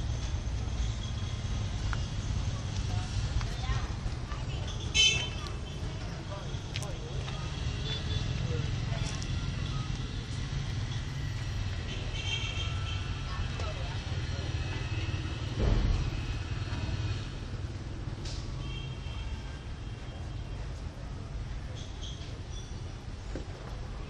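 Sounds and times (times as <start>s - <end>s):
brief bump: 15.6s - 16.3s.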